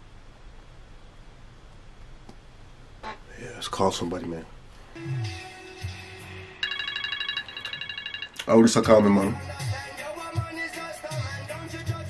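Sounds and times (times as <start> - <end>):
phone ringtone trill: 6.6 - 8.4.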